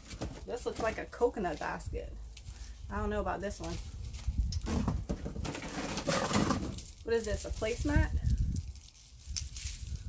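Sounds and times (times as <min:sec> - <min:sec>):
baskets rustling and scraping: 0:00.0 - 0:10.0
wind rumbling on microphone: 0:00.5 - 0:10.0.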